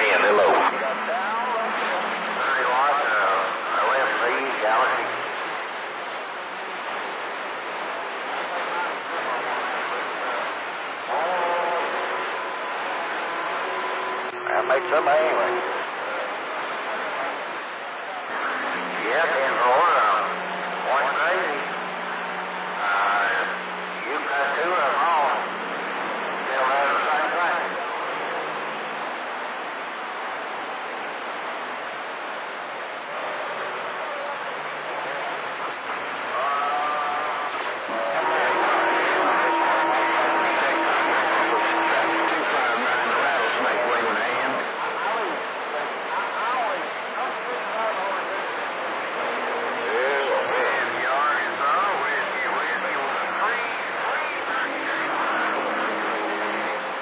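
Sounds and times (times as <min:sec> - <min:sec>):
distant radio voices: 0:00.0 - 0:57.0
radio static hiss: 0:00.0 - 0:57.0.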